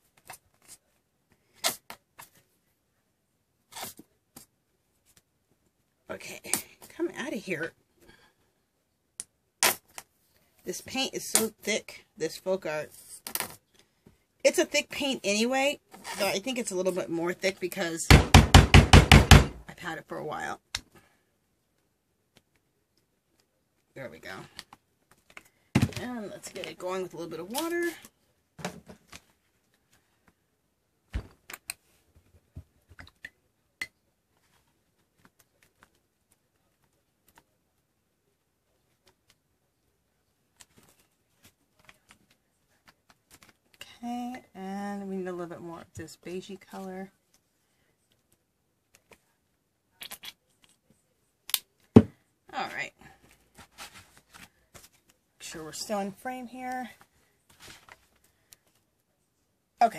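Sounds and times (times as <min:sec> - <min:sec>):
knocks of supplies handled: 0:24.7 - 0:26.1, 0:28.6 - 0:29.3, 0:51.9 - 0:52.2.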